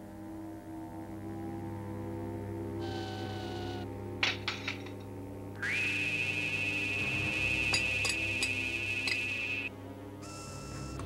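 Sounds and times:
low steady drone: 0.0s - 11.0s
rising electronic whine: 5.6s - 9.7s.

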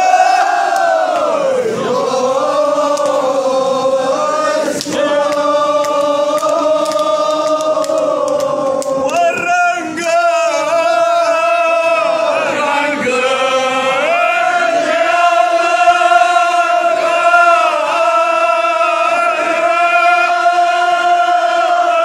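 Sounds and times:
crowd of men chanting: 0.0s - 22.0s.

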